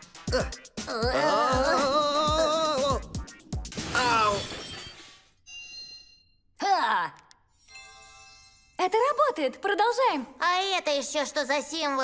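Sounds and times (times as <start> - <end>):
cartoon falling cry: 0.3 - 3.0, 3.9 - 4.5
bright magical chime: 7.6 - 9.4.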